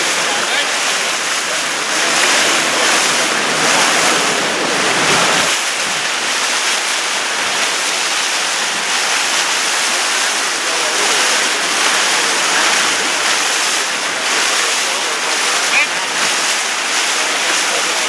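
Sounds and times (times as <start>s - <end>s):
paddles digging into water: 0.0s - 18.0s
water rushing and splashing: 0.0s - 18.0s
wind rumble on microphone: 1.6s - 6.1s.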